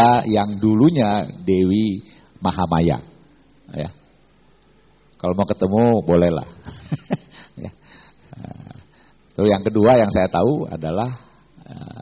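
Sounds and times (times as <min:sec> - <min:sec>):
soft laughter and chuckling: 0:06.6 - 0:08.8.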